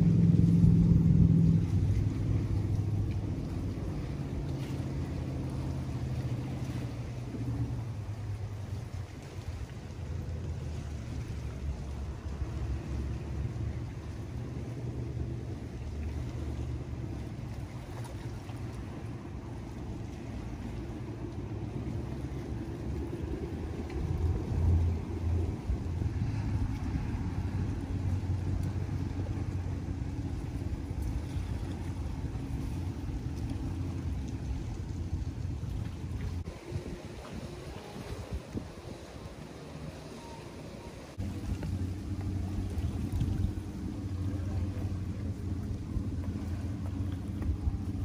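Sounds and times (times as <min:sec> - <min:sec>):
low motor drone: 0:00.0 - 0:48.0.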